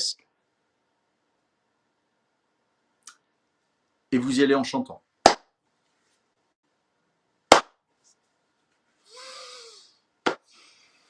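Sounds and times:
sharp hand claps: 5.3 - 5.5, 7.5 - 7.8.

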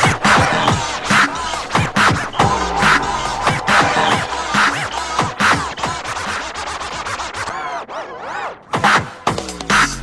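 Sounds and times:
breakbeat dj mix: 2.1 - 7.4.

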